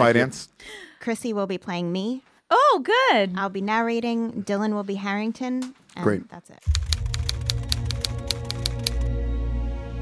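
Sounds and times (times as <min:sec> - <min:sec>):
typewriter keys clacking: 0:06.7 - 0:09.1.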